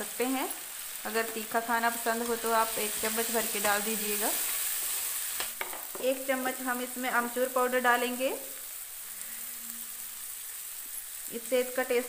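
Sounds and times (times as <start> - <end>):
masala sizzling in hot oil: 0.0 - 12.0.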